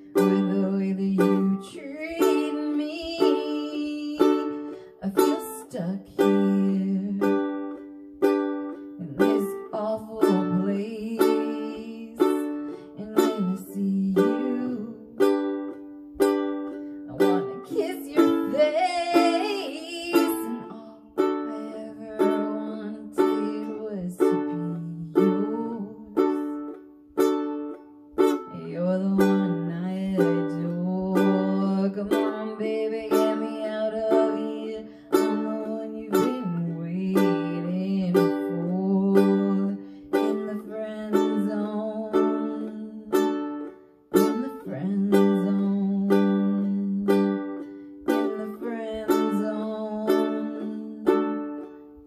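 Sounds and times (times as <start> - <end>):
woman singing: 0.0 - 26.8, 28.2 - 52.0
ukulele strumming chords: 0.0 - 52.0.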